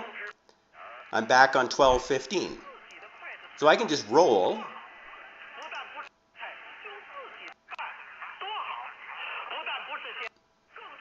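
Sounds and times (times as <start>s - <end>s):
faint radio hiss: 0.0s - 11.0s
radio talk: 1.2s - 11.0s.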